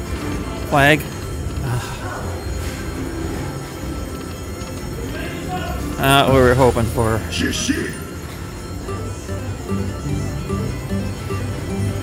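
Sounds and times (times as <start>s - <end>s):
slot machine game music: 0.0s - 12.0s.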